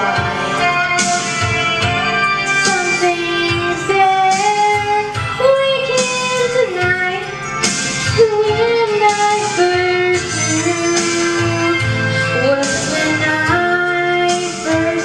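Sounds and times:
amplified guitar accompaniment: 0.0 - 15.0
girl singing into microphone: 0.0 - 15.0.

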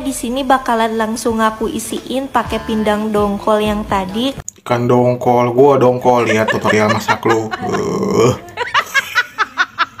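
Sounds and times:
man laughing: 6.1 - 10.0
rough throaty sound: 7.6 - 8.4.

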